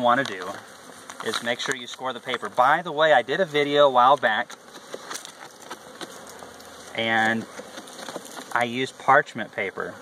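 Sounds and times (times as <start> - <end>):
hive tool cutting newspaper: 0.0 - 10.0
honeybees buzzing: 0.0 - 10.0.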